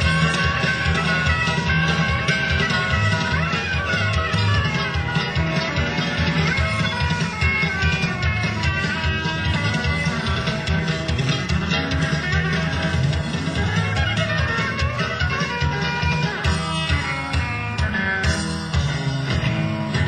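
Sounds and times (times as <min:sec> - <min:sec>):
guitar: 0:00.0 - 0:20.0
live country rock band: 0:00.0 - 0:20.0.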